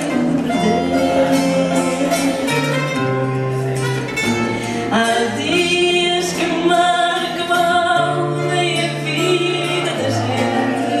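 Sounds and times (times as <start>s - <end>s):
acoustic guitar: 0.0s - 11.0s
plucked guitar: 0.0s - 11.0s
woman singing: 4.9s - 11.0s.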